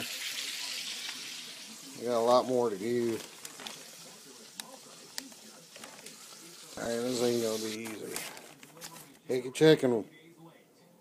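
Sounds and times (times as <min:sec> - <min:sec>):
chicken sizzling in oil: 0:00.0 - 0:07.8.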